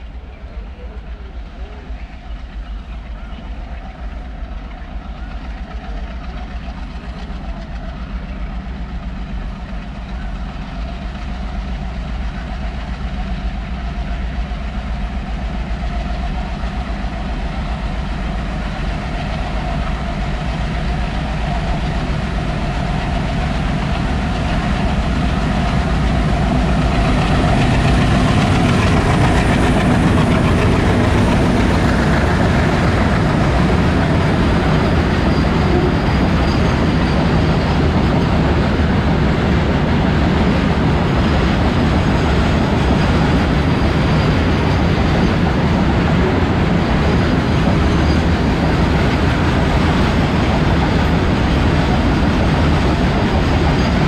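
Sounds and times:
diesel locomotive engines chugging: 0:00.0 - 0:54.0.

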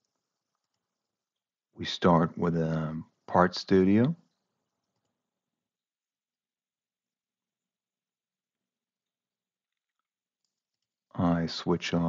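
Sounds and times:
person speaking: 0:01.8 - 0:04.2, 0:11.2 - 0:12.0.

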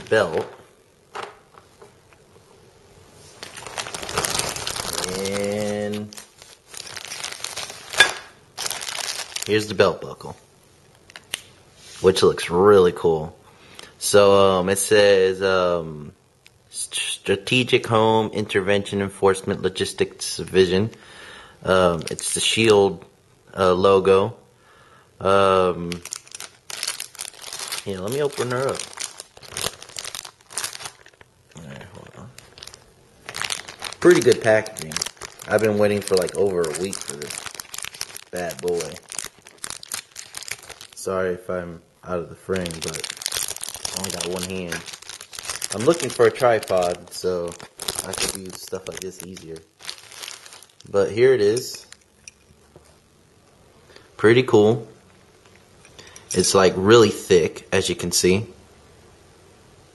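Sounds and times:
plastic packaging crinkling: 0:03.2 - 0:10.2, 0:10.9 - 0:11.5, 0:21.8 - 0:22.5, 0:25.8 - 0:41.2, 0:42.4 - 0:52.6.

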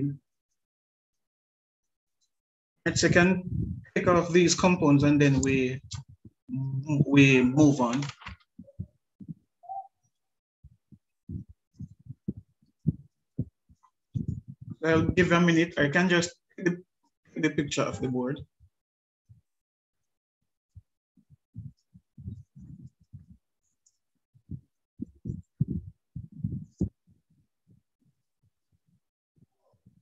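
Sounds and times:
soft low thumps: 0:02.9 - 0:07.5, 0:08.6 - 0:09.4, 0:10.6 - 0:15.4, 0:21.4 - 0:23.4, 0:24.4 - 0:27.1.

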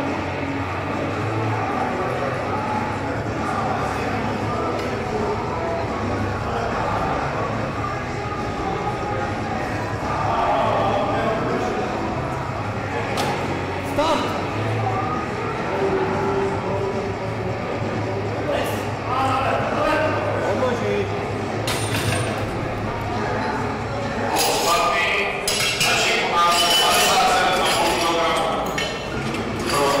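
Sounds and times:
echoing voices and chatter: 0:00.0 - 0:30.0.

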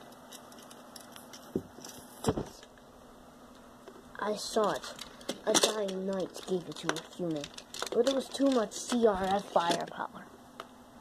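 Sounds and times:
plastic toys rattling: 0:00.2 - 0:02.7, 0:04.2 - 0:10.1.

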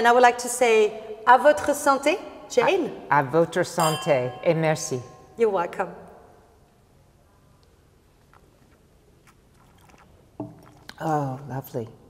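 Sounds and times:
sipping wine from a glass: 0:08.2 - 0:11.0.

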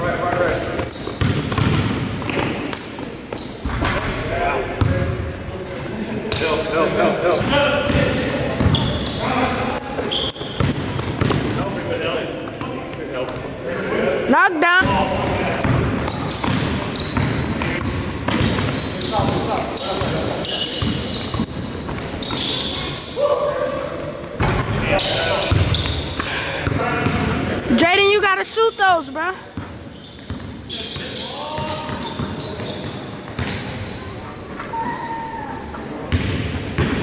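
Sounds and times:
sneakers squeaking: 0:00.0 - 0:05.3, 0:06.2 - 0:37.0
players' voices echoing: 0:00.0 - 0:37.0
basketball bouncing: 0:01.1 - 0:02.6, 0:04.8 - 0:05.1, 0:10.6 - 0:11.5, 0:14.8 - 0:20.2, 0:25.4 - 0:27.4, 0:36.1 - 0:37.0.

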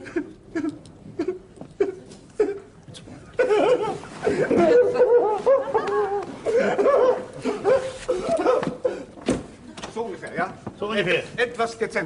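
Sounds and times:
man sobbing: 0:00.0 - 0:02.7, 0:03.4 - 0:09.2.

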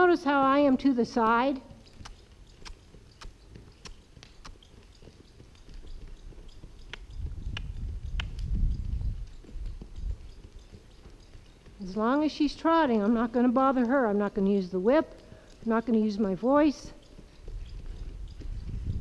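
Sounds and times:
hoofbeats on sand: 0:00.0 - 0:19.0
light clicks: 0:01.8 - 0:10.0.

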